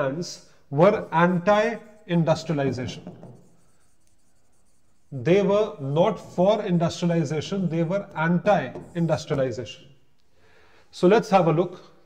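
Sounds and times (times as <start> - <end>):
pen scratching on whiteboard: 0.8 - 9.6.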